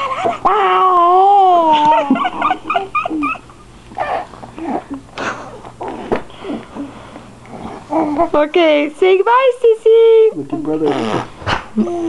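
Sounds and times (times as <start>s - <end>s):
dog whimpering and whining: 2.9s - 5.0s, 7.7s - 8.3s.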